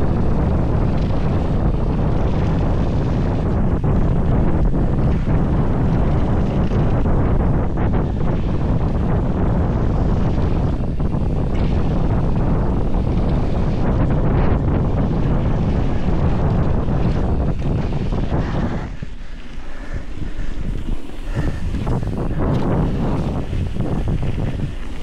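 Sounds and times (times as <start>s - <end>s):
wind rushing on microphone: 0.0s - 25.0s.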